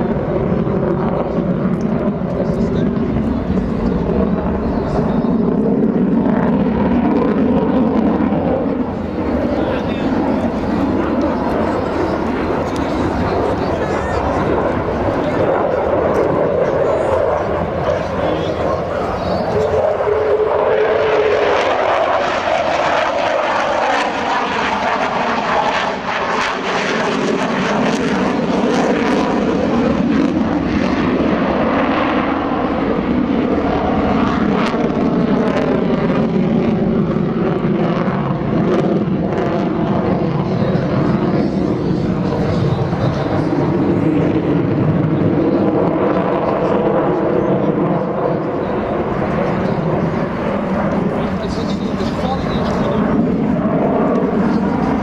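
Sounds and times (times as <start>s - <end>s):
jet engine roar overhead: 0.0s - 55.0s.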